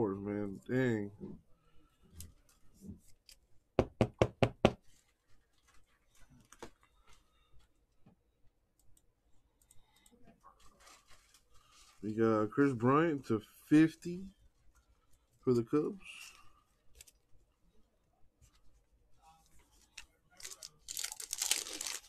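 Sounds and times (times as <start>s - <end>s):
trading cards rustling: 19.6s - 22.0s.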